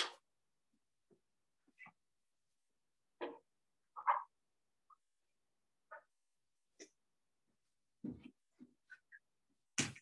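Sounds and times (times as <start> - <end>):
soft footsteps on a floor: 7.6 - 9.0.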